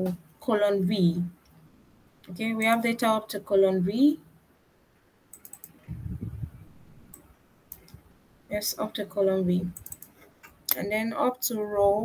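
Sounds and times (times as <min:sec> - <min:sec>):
computer mouse clicks: 0:02.6 - 0:02.8, 0:05.3 - 0:05.9, 0:07.1 - 0:08.0, 0:09.7 - 0:10.8.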